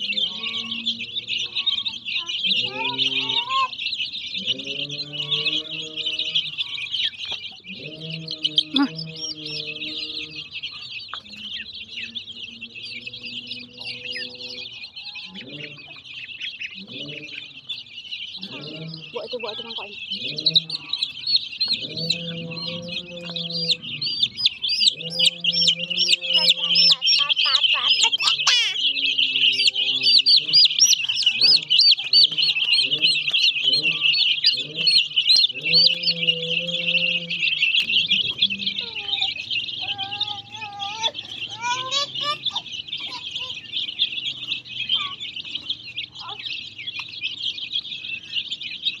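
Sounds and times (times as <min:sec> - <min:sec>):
baby chickens peeping: 0:00.0 - 0:49.0.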